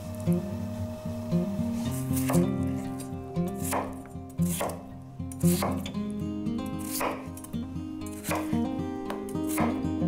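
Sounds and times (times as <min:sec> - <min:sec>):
knife chopping on wooden board: 0:03.6 - 0:04.8, 0:05.5 - 0:05.9, 0:06.8 - 0:07.3, 0:08.2 - 0:09.8.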